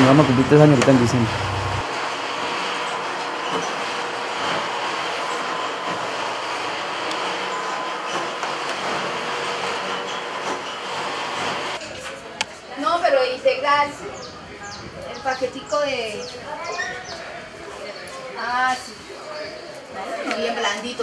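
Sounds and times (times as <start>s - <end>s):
oven rushing noise: 0.0s - 11.8s.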